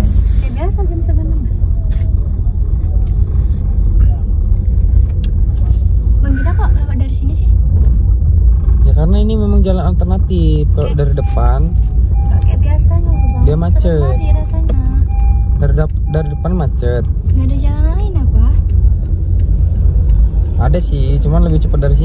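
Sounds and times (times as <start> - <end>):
car interior rumble: 0.0 - 22.0
people talking: 8.9 - 18.6.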